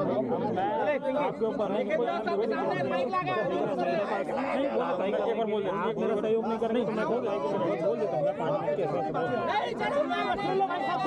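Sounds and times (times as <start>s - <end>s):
men talking in a crowd: 0.0s - 11.0s.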